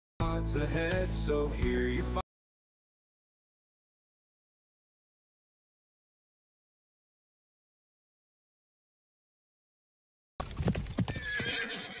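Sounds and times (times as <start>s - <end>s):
horse hooves clopping: 10.4s - 12.0s
horse whinnying: 10.9s - 12.0s.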